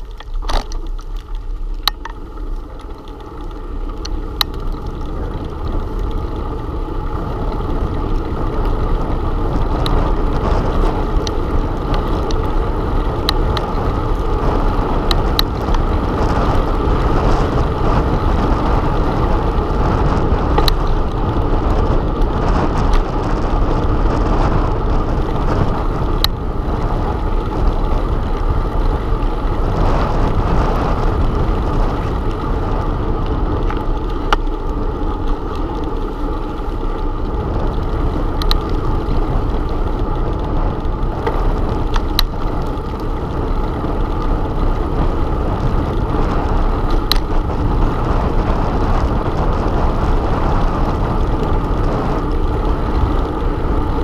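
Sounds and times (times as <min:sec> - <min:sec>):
bicycle tyres rumbling on pavement: 0:00.0 - 0:54.0
faint bike clicks: 0:00.0 - 0:54.0
wind rushing over microphone: 0:00.0 - 0:54.0.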